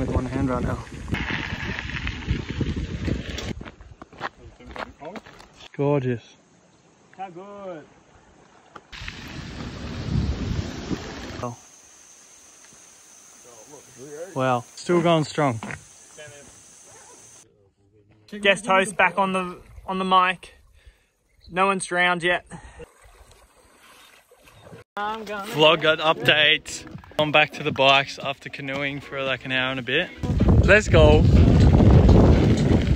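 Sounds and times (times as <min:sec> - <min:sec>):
wind buffeting microphone: 0:00.0 - 0:04.0, 0:09.0 - 0:11.4, 0:30.2 - 0:32.9
paddles dipping in water: 0:06.7 - 0:11.4, 0:22.6 - 0:29.2.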